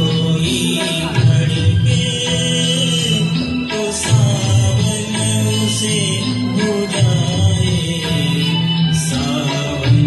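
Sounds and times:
karaoke backing track: 0:00.0 - 0:10.0
man singing into microphone: 0:00.0 - 0:10.0.

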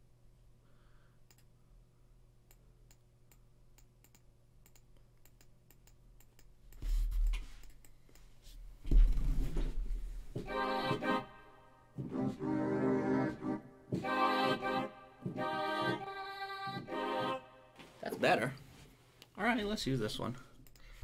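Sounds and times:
reedy organ-like chords: 0:12.0 - 0:16.1.

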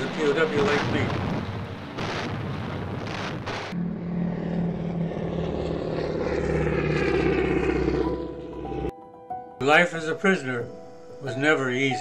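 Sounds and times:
explosion-like bursts: 0:00.0 - 0:07.4
propeller aircraft engines droning: 0:00.0 - 0:08.9, 0:09.6 - 0:12.0.

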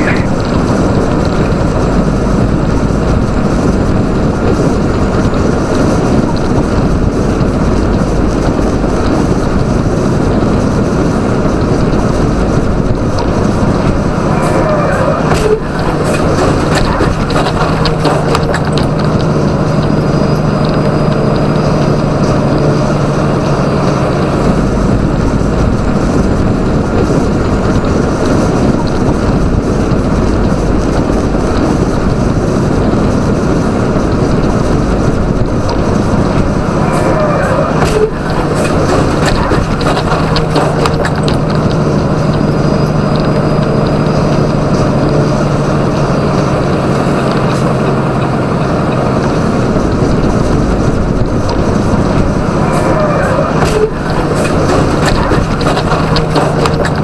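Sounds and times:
diesel truck engine hum: 0:00.0 - 0:57.0
road and tyre noise: 0:00.0 - 0:57.0.

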